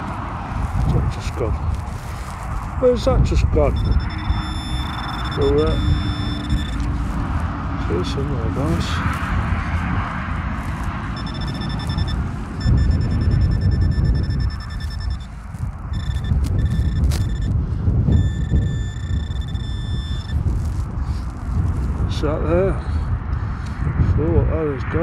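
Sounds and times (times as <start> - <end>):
high electronic buzzing tone: 3.7 - 7.2, 10.6 - 21.8.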